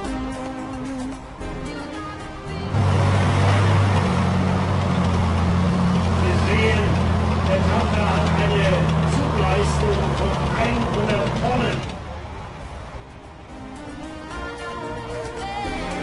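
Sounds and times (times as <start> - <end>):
heavy diesel engines droning: 2.2 - 13.6.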